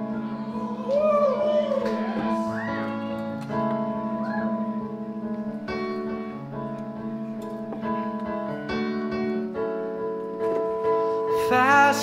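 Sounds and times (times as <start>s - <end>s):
person singing: 0.0s - 3.6s, 11.3s - 12.0s
sustained keyboard chords: 0.0s - 12.0s.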